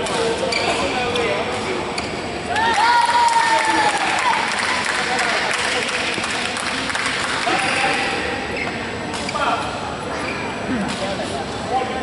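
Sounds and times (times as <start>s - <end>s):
spectators clapping: 2.5s - 8.0s.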